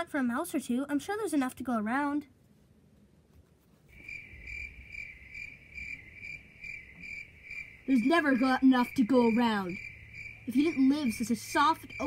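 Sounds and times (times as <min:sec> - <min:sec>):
cricket chirping: 0:03.9 - 0:12.0.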